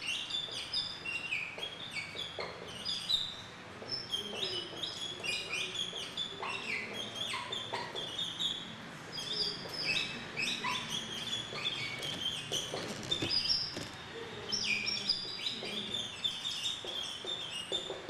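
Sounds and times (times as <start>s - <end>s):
small birds chirping: 0.0s - 18.0s.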